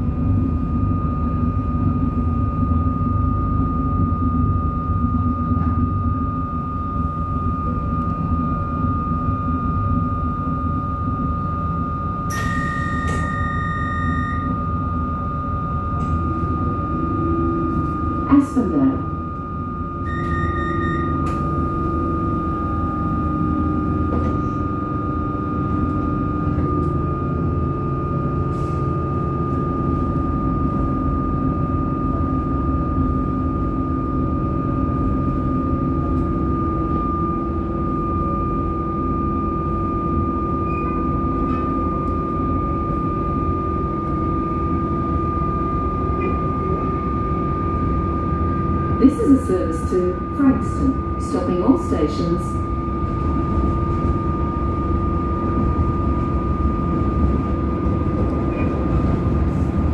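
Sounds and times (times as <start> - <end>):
train rumble: 0.0 - 59.9
high electric whine: 11.8 - 16.8
short beeping tone: 12.3 - 14.6, 20.0 - 21.4.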